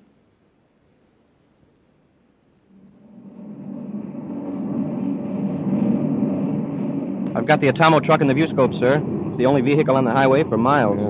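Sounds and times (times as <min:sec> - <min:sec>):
rocket engine drone: 0:02.6 - 0:11.0.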